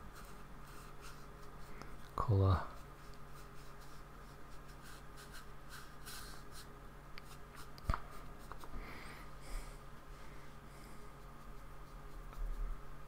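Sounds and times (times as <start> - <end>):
paintbrush scraping on paper: 0.0 - 1.8, 2.6 - 8.6, 11.0 - 12.8.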